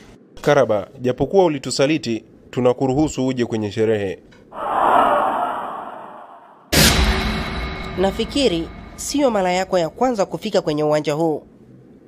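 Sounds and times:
breathy whoosh: 0:04.6 - 0:06.7.

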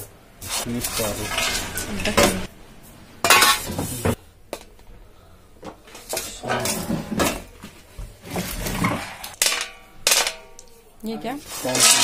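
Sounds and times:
steel bowl clattering: 0:00.8 - 0:02.5, 0:11.5 - 0:12.0.

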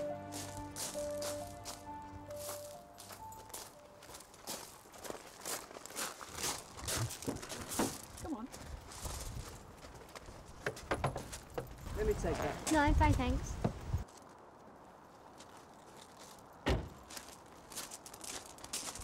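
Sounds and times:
soft music: 0:00.0 - 0:04.8
footsteps crunching on gravel: 0:00.0 - 0:10.6, 0:15.1 - 0:19.0.

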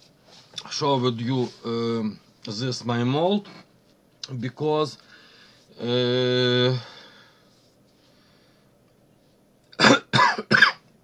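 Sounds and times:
person coughing: 0:09.8 - 0:10.8.

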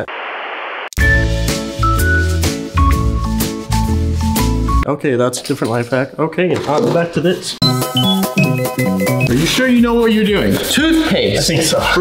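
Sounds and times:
background music with bass beat: 0:01.0 - 0:04.8.

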